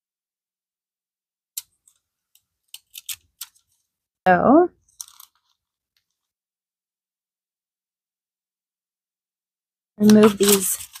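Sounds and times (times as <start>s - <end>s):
paper crackling: 10.0s - 11.0s
parchment strip peeled away: 10.0s - 11.0s.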